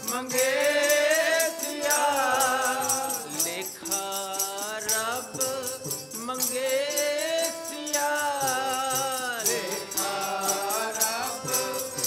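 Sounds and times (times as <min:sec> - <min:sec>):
harmonium: 0:00.0 - 0:12.0
men singing chant-like: 0:00.0 - 0:12.0.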